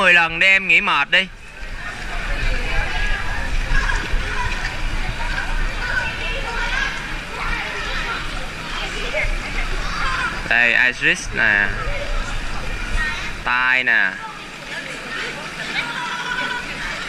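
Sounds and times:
steady low rumble: 0.0 - 14.6
water splashing and sloshing: 0.0 - 17.0
indistinct voices: 1.1 - 17.0.

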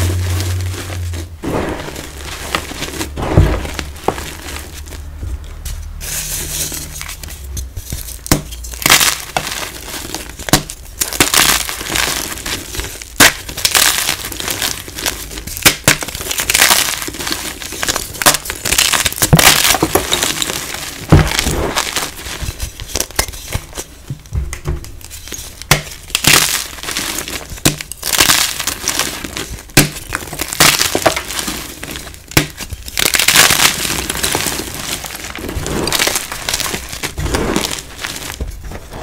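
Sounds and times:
chalk crunching and crumbling: 0.0 - 24.2, 25.0 - 39.0
chalk pieces snapping: 7.0 - 20.8.

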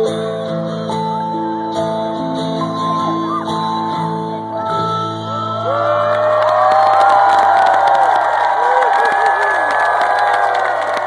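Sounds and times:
crowd cheering and whooping: 5.3 - 11.0.

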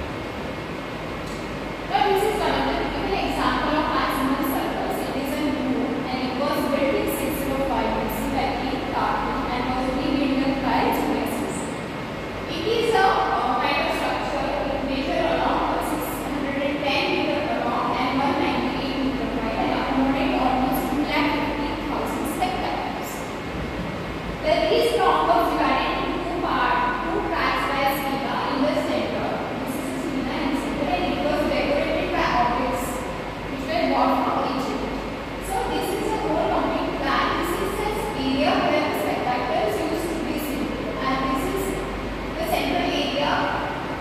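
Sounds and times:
rumbling background noise with hiss: 0.0 - 44.0
steady low hum: 0.0 - 44.0
woman speaking: 1.9 - 11.8, 12.5 - 23.3, 24.4 - 43.8.

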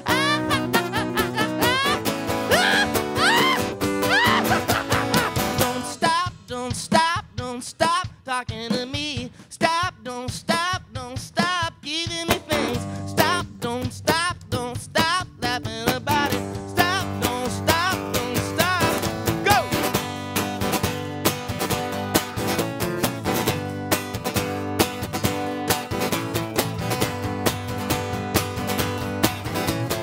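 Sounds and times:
electric bass: 0.0 - 5.8, 12.4 - 30.0
drum kit: 0.0 - 30.0
strummed acoustic guitar: 0.0 - 30.0.

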